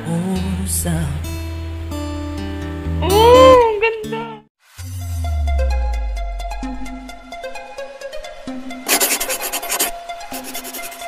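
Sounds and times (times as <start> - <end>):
electronic intro music: 4.7 - 9.2.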